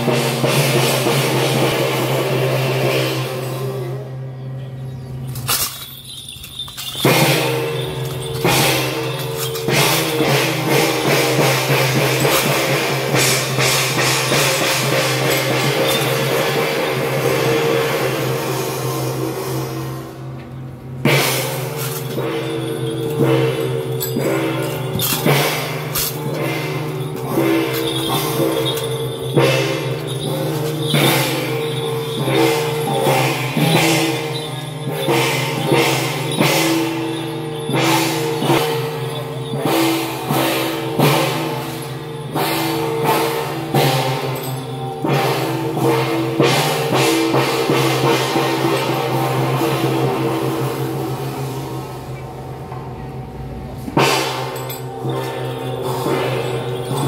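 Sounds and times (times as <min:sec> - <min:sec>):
drums and cymbals: 0:00.0 - 0:57.0
sustained melodic tones: 0:03.4 - 0:18.8, 0:21.8 - 0:57.0.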